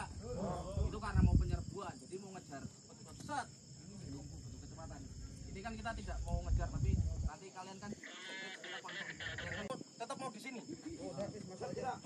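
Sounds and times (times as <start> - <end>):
high-pitched insect drone: 0.0 - 12.0
soldiers talking: 0.0 - 12.0.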